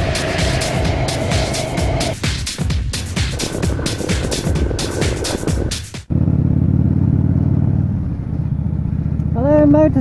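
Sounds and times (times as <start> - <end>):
intro music with steady beat: 0.0 - 6.1
motorcycle engine running: 0.0 - 10.0.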